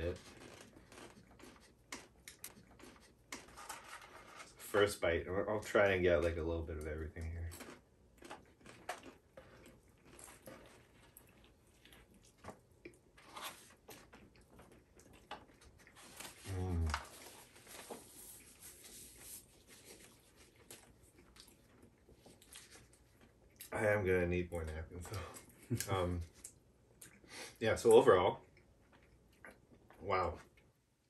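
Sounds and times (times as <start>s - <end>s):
chewing crunchy food: 0.0s - 4.6s, 5.5s - 23.9s, 28.4s - 30.7s.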